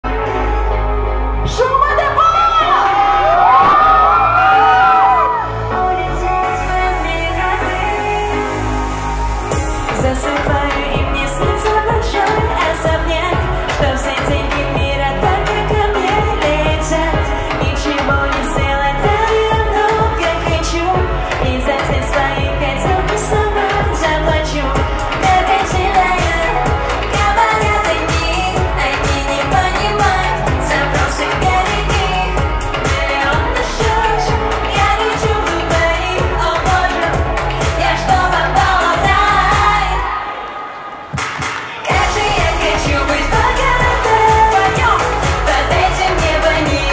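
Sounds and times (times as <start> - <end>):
woman singing into microphone: 1.4 - 40.8, 41.8 - 46.9
backing track with drums and bass: 9.5 - 40.0, 41.2 - 46.9.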